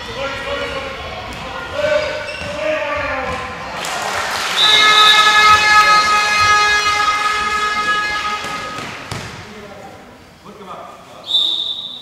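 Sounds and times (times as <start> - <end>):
horn sounding a long steady note: 4.6 - 8.8.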